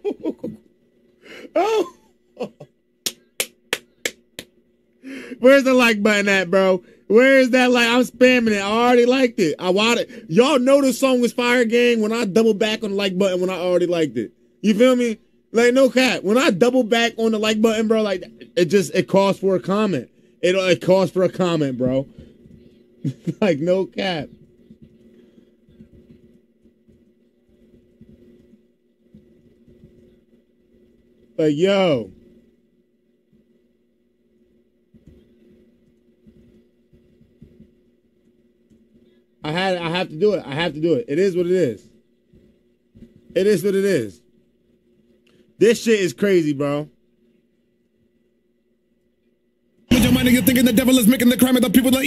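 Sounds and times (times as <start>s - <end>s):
low steady hum: 0.0s - 52.0s.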